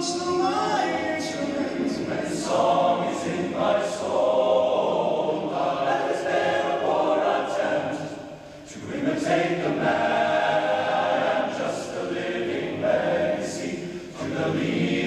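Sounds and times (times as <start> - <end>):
male choir singing a cappella: 0.0 - 15.0.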